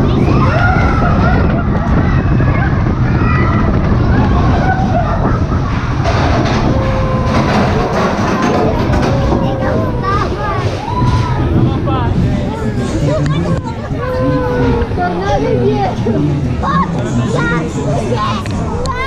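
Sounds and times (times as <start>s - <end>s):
roller coaster rumbling on track: 0.0s - 19.0s.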